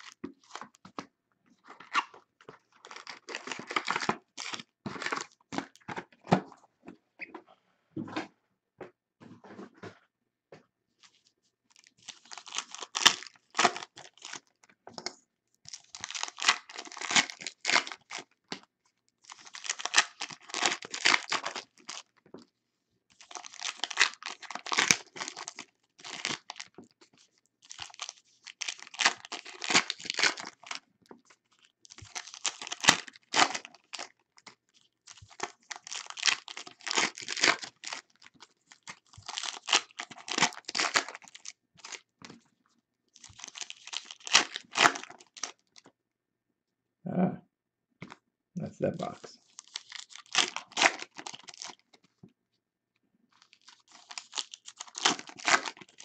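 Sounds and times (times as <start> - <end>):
wrappers crinkling: 11.7 - 14.6, 15.7 - 18.6, 19.2 - 22.2, 23.2 - 26.7, 27.6 - 30.8, 31.6 - 42.0, 43.2 - 45.8, 49.4 - 51.9, 53.4 - 56.0
foil wrappers tearing: 27.8 - 30.8, 35.2 - 41.5, 49.6 - 51.8, 53.5 - 56.0.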